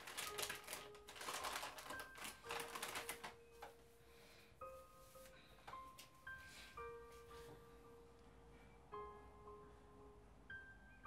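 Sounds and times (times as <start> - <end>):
rustling and clicking of small objects: 0.0 - 3.7
soft background music: 0.0 - 11.0.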